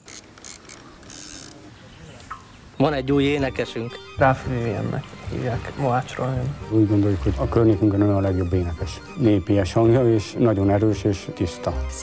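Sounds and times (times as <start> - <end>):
fishing line whirring out: 0.0 - 1.6
fishing reel clicking: 0.0 - 1.6.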